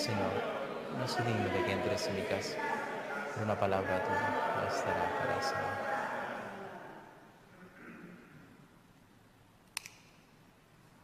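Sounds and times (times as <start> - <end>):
man's voice echoing in church: 0.0 - 6.6.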